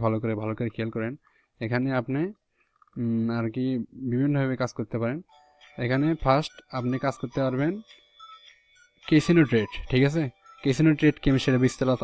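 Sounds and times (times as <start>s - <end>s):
man talking: 0.0s - 2.4s, 3.0s - 7.9s, 9.1s - 12.0s
faint ringing chime: 5.3s - 12.0s.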